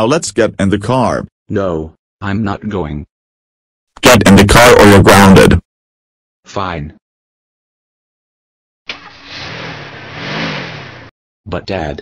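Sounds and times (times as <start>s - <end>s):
car engine pulling away: 8.9s - 11.1s.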